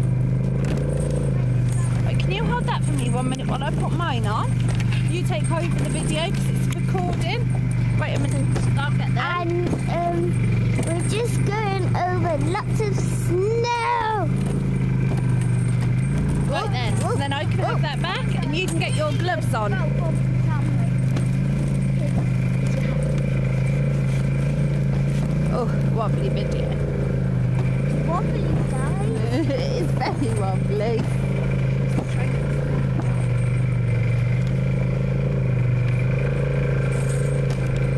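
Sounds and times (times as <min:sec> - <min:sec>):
snowmobile engine running: 0:00.0 - 0:37.9
voice calling out: 0:11.4 - 0:14.4.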